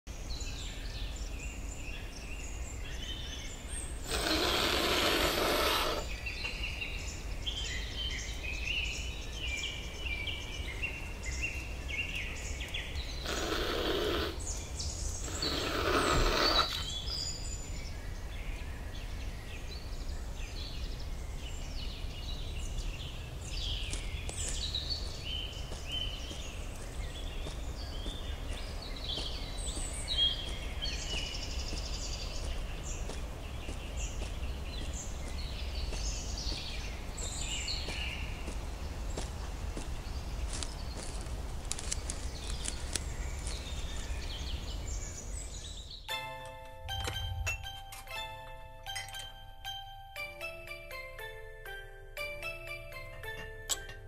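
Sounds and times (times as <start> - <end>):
small birds chirping: 0.1 - 46.1.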